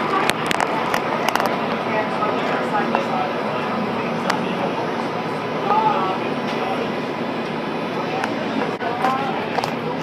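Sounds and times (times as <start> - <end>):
train running rumble: 0.0 - 10.0.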